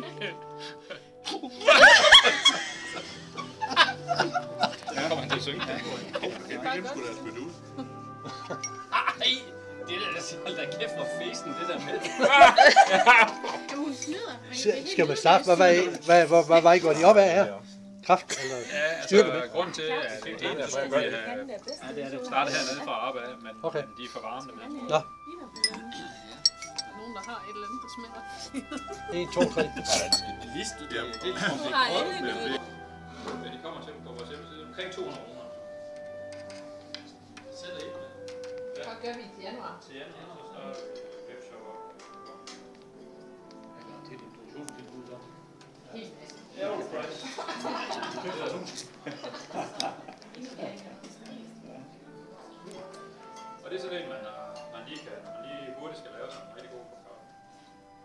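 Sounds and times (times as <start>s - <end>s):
people laughing: 0.0s - 9.4s, 11.6s - 13.8s, 18.3s - 19.2s, 28.4s - 30.4s, 47.0s - 50.8s
background music: 0.0s - 58.0s
spoons clinking against cups: 8.6s - 8.9s, 25.5s - 27.4s, 29.8s - 30.5s.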